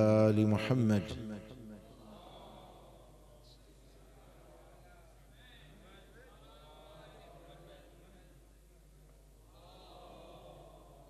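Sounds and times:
faint voices in a hall: 0.0s - 11.0s.

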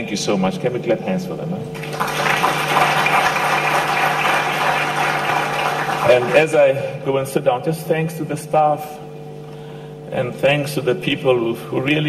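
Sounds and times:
audience applauding: 1.8s - 6.6s.

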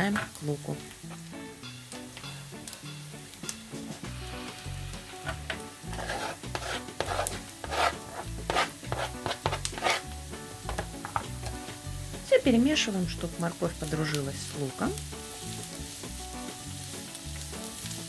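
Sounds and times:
background music: 0.0s - 18.0s
onion sizzling in frying pan: 0.0s - 18.0s
knife scraping cutting board: 5.3s - 10.1s.

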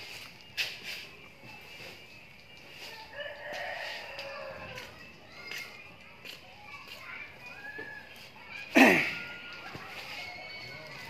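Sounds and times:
rooster crowing: 3.1s - 4.9s.

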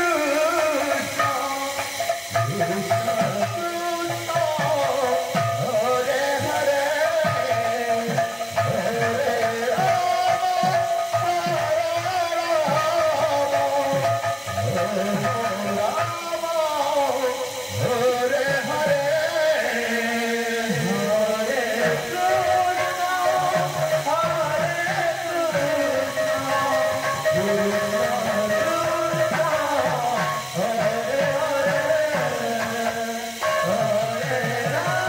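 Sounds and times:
devotional melody line: 0.0s - 35.0s
drums beating rhythm: 0.0s - 35.0s.

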